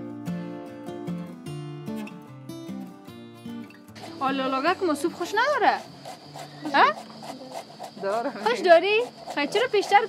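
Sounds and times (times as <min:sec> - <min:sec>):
conversation: 0:03.4 - 0:10.0.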